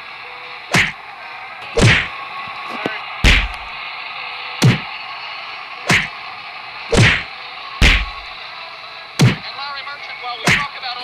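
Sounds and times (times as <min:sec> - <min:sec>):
heavy punch whacks: 0:00.7 - 0:01.0, 0:01.8 - 0:02.1, 0:03.2 - 0:03.6, 0:04.6 - 0:04.9, 0:05.9 - 0:06.1, 0:06.9 - 0:08.2, 0:09.2 - 0:09.4, 0:10.5 - 0:10.7.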